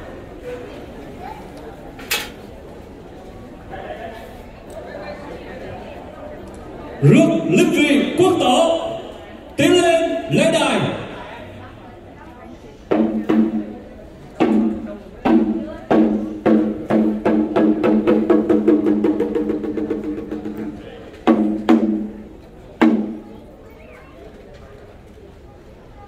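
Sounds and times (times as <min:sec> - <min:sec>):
ceremonial drum beats and roll: 0:12.9 - 0:13.8, 0:14.4 - 0:22.2.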